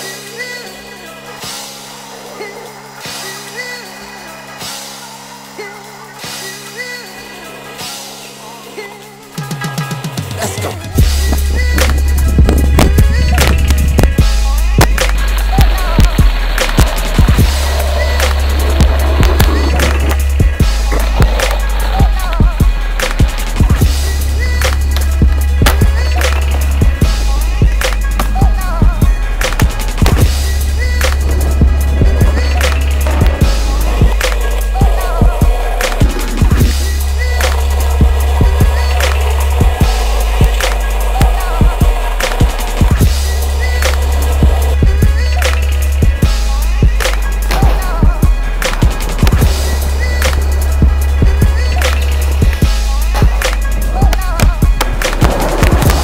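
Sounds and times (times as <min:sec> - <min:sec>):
music with heavy bass line: 0:09.9 - 0:56.0
skateboard wheels rolling: 0:10.8 - 0:14.2, 0:15.3 - 0:44.8, 0:47.4 - 0:56.0
skateboard clacks: 0:51.5 - 0:56.0.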